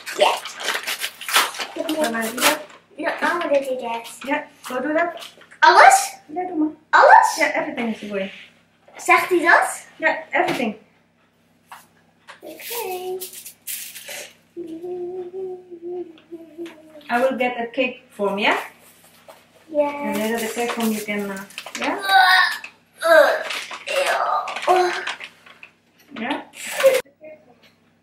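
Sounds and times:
paper packet crinkling: 0.0s - 4.5s, 12.8s - 14.3s, 20.0s - 25.8s, 26.6s - 27.0s
kitchen clatter: 0.0s - 5.5s
person humming a low note: 14.6s - 17.0s
person talking: 19.7s - 25.1s.

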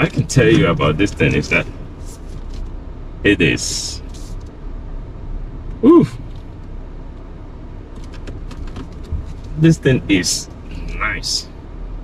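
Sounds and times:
car cabin road rumble: 0.0s - 12.0s.

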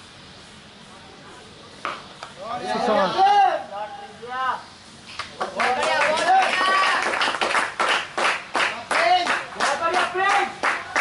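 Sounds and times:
hands clapping: 5.2s - 11.0s.

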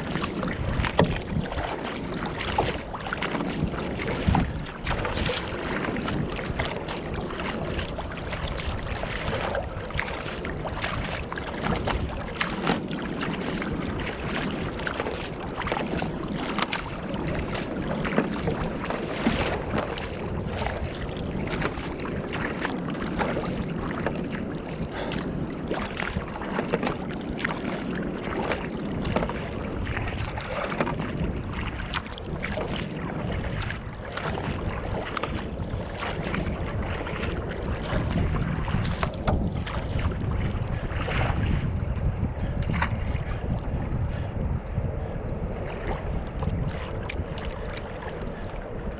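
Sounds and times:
water splashing against boat: 0.0s - 48.9s
wind rumble on microphone: 0.0s - 48.9s.

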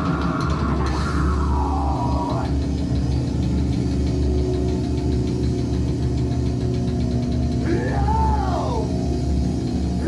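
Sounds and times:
distorted guitar and bass: 0.0s - 10.0s
drums fast beat: 0.0s - 10.0s.

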